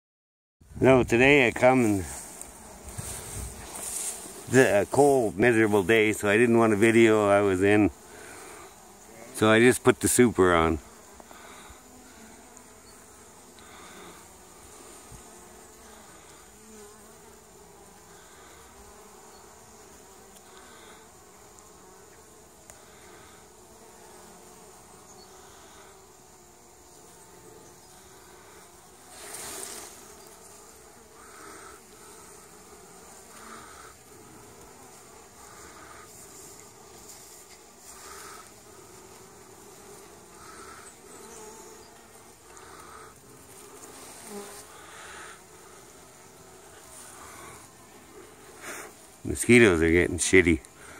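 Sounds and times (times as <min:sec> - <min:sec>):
honeybees buzzing: 0:00.6 - 0:50.9.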